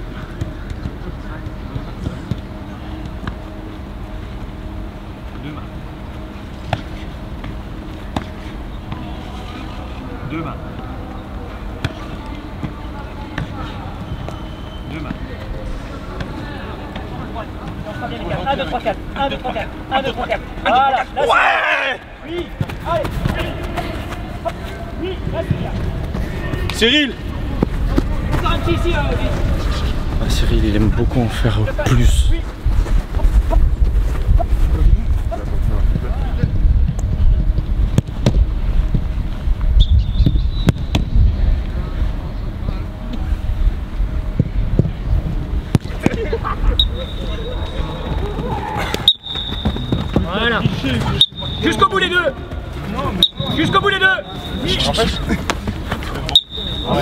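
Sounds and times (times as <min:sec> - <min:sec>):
open-air background noise: 0:00.0 - 0:57.0
steady low rumble: 0:22.1 - 0:51.6
football thuds: 0:35.9 - 0:39.0, 0:47.9 - 0:51.7.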